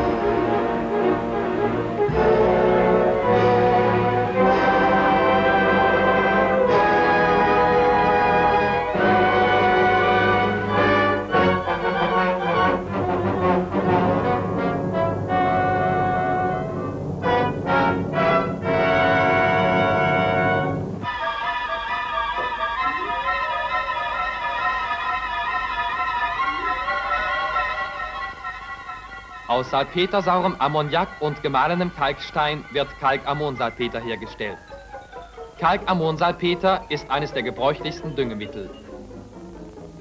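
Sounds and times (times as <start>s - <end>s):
orchestral music: 0.0s - 40.0s.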